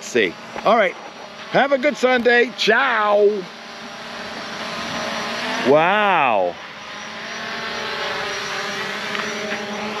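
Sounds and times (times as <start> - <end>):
drone propellers buzzing: 0.0 - 10.0.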